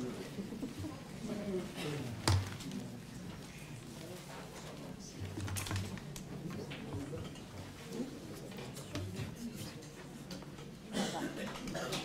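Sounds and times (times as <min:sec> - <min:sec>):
murmur of people chatting: 0:00.0 - 0:12.0.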